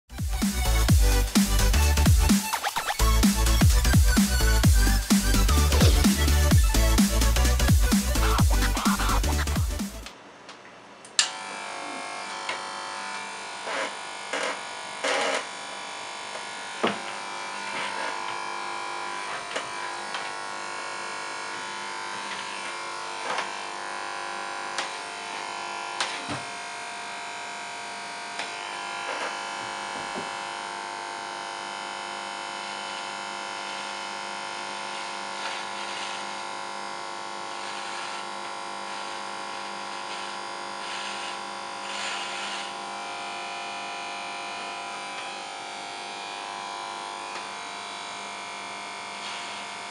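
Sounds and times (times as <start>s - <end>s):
hair clipper buzzing: 0.2s - 10.2s, 11.1s - 49.9s.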